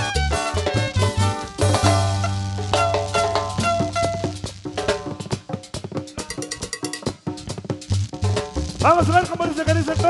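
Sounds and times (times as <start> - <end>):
live band melody: 0.0 - 10.0
quick dense percussion strokes: 0.0 - 10.0.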